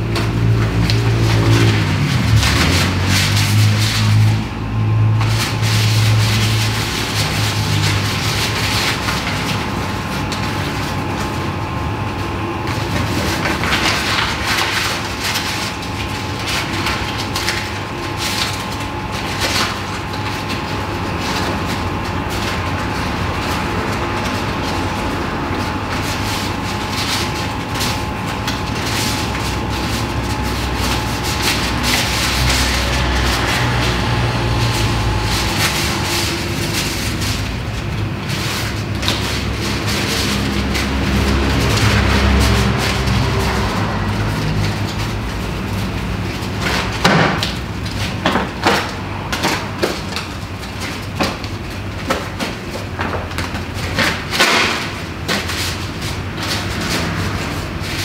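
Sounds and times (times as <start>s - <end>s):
low rumbling drone: 0.0s - 46.3s.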